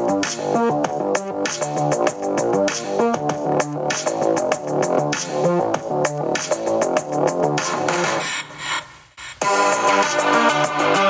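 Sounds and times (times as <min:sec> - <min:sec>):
electronic music through laptop speakers: 0:00.0 - 0:11.0.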